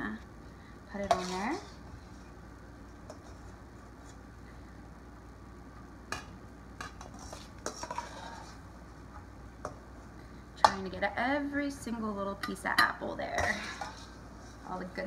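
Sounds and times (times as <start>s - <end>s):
metal spoon scraping in steel bowl: 1.0s - 1.9s, 6.8s - 8.6s, 13.4s - 14.8s.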